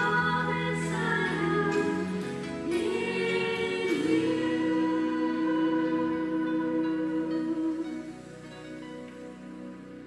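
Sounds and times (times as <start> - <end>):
women singing in harmony: 0.0 - 8.8.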